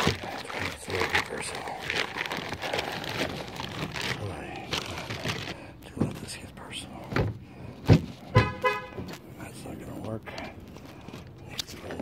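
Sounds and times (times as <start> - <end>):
heavy thump: 7.1 - 8.2
car horn short toots: 8.3 - 9.1.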